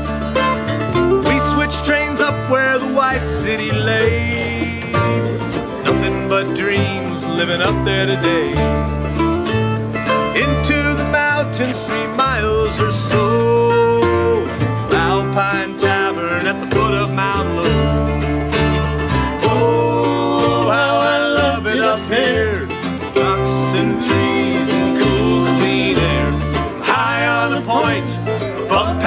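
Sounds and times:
acoustic guitar plucking: 0.0s - 29.0s
mandolin plucking: 0.0s - 29.0s
upright bass: 0.0s - 29.0s.

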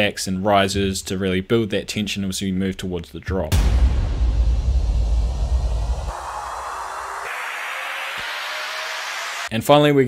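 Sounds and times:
deep booming impact: 3.5s - 6.4s
white-noise risers: 3.6s - 9.5s.

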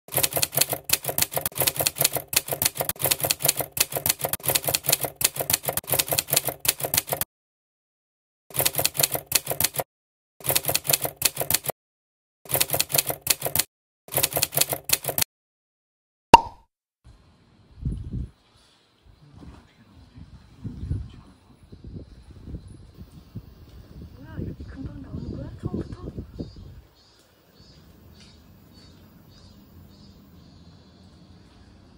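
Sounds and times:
keyboard typing clicks: 0.1s - 7.2s, 8.6s - 9.8s, 10.4s - 11.7s, 12.5s - 15.3s.

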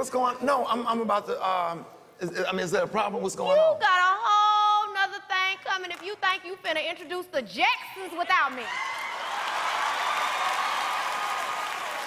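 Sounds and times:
audience applauding: 8.4s - 12.0s.

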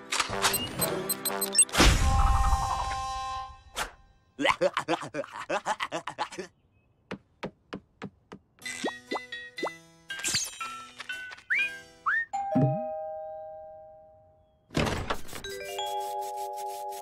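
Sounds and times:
playful music with sliding whistle: 0.4s - 3.8s, 8.8s - 12.4s
cartoon cat laughing: 4.4s - 6.5s
two-note doorbell chime: 12.4s - 14.4s.

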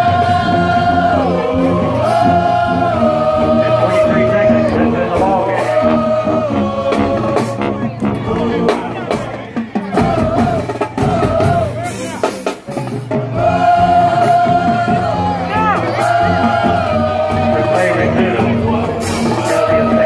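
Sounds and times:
drum and cymbal hits: 0.0s - 20.0s
marching band brass notes: 0.0s - 20.0s.

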